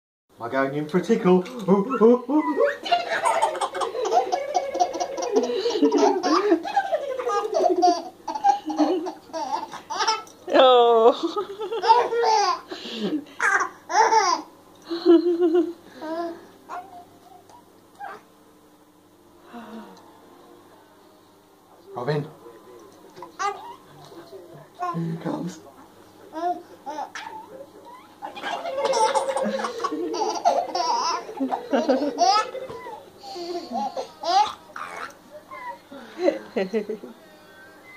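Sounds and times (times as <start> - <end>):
adult laughing: 1.8 - 9.3, 14.9 - 15.8, 28.4 - 34.1
baby giggling: 1.9 - 10.3, 11.5 - 12.7, 13.4 - 14.5, 26.4 - 35.8.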